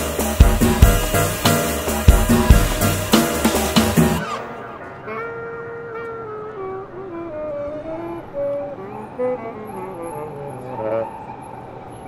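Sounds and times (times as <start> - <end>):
saxophone slow melody: 0.0 - 11.0.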